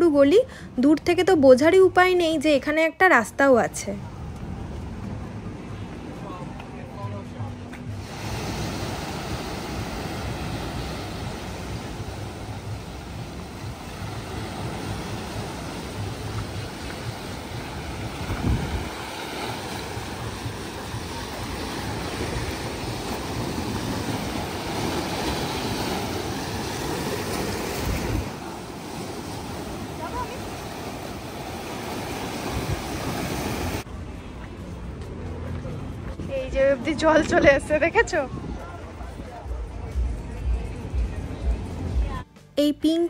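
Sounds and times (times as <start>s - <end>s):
waves surging and breaking: 4.0s - 42.2s
wind buffeting microphone: 8.0s - 33.8s, 36.2s - 39.2s.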